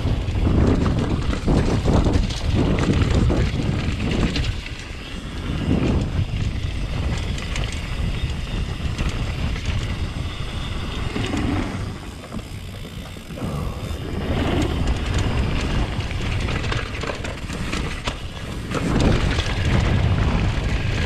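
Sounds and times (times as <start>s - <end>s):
bike chain rattling: 0.0s - 21.0s
bike tyres rumbling over dirt: 0.0s - 21.0s.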